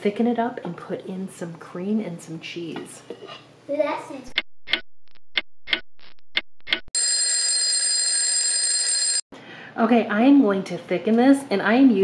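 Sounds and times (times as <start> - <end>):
alarm ringing: 7.0 - 9.2.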